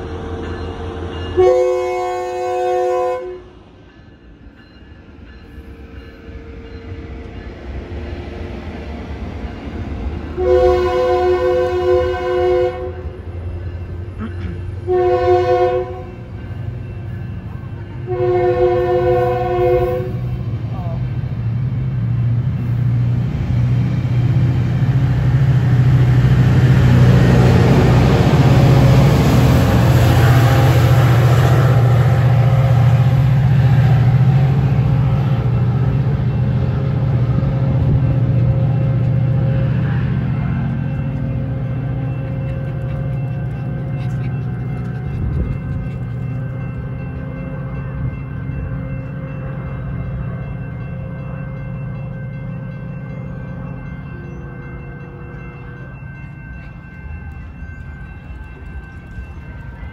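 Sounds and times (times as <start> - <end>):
diesel train rumble: 0.0 - 59.9
rail noise: 0.0 - 59.9
train horn blasts: 1.3 - 3.5, 10.3 - 13.2, 14.8 - 16.3, 18.0 - 20.3.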